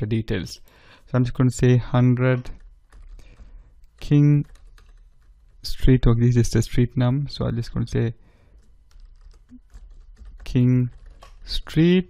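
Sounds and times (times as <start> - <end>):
computer keyboard typing: 2.4 - 6.1, 8.4 - 11.6.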